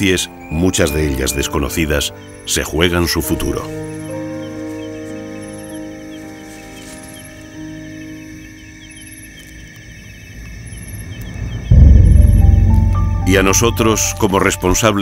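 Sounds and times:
background music of held chords: 0:00.0 - 0:09.8, 0:11.7 - 0:15.0.

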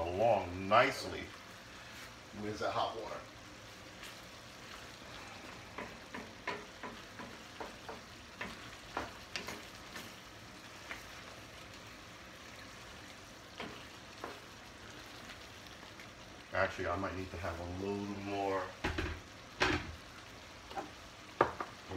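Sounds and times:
simmering liquid sizzling: 0:00.0 - 0:21.9
wooden spoon knocking and scraping pan: 0:05.7 - 0:11.3, 0:13.6 - 0:14.6, 0:18.8 - 0:20.0, 0:20.7 - 0:21.9.

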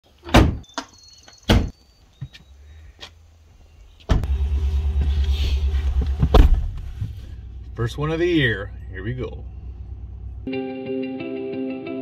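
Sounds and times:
tailgate slamming shut: 0:00.3 - 0:00.6, 0:06.2 - 0:06.8
truck engine rumble: 0:04.0 - 0:10.5
heavy thud: 0:05.9 - 0:07.3.

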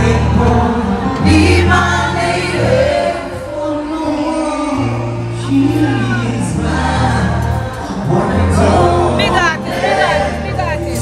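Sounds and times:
live reggae band playing: 0:00.0 - 0:11.0
several voices singing: 0:00.0 - 0:11.0.

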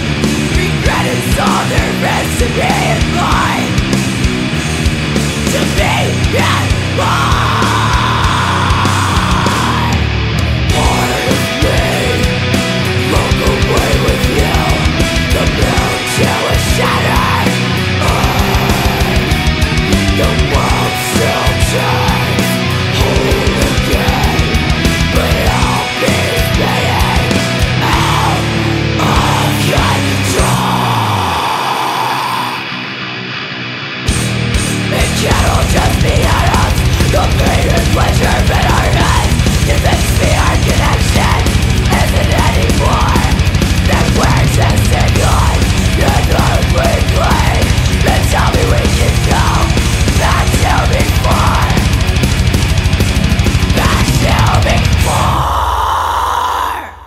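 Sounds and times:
distorted electric guitar ringing: 0:00.0 - 0:31.4, 0:32.4 - 0:55.5
drums and bass: 0:00.0 - 0:57.0
woman screaming vocal: 0:55.0 - 0:57.0.

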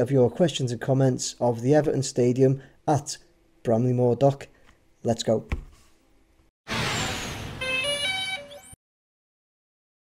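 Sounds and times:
loud whoosh: 0:06.7 - 0:07.9
electronic tones stepping in pitch: 0:06.7 - 0:08.8.

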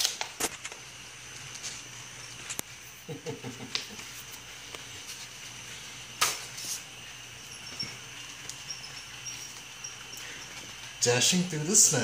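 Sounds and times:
paper ripping: 0:00.0 - 0:00.8.

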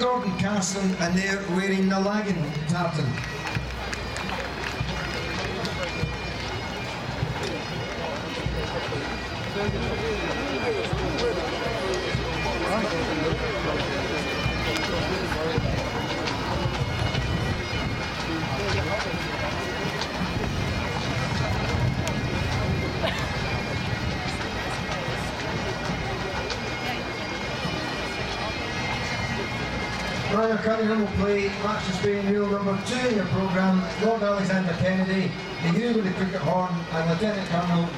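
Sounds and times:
bagpipes playing: 0:00.0 - 0:37.9
people chattering: 0:00.0 - 0:37.9.

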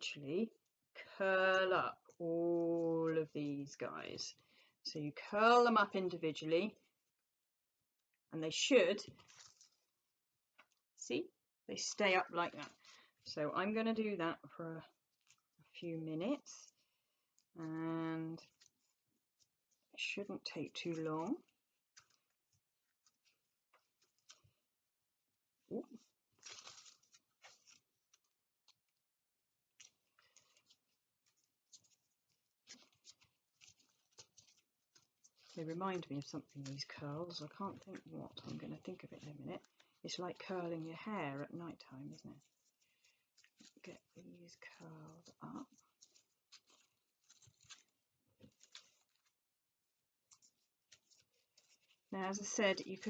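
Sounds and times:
paper strips rustling: 0:09.0 - 0:10.0, 0:14.9 - 0:24.8, 0:25.7 - 0:53.0.

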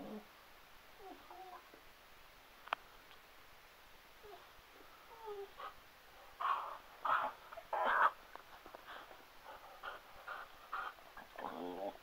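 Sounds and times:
dog whining: 0:05.1 - 0:05.6, 0:11.3 - 0:12.0.

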